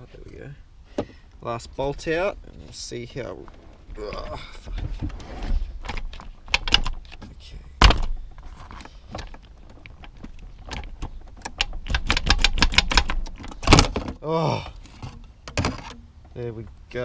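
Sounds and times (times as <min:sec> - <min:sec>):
light clicks and rattles: 0:01.8 - 0:17.0.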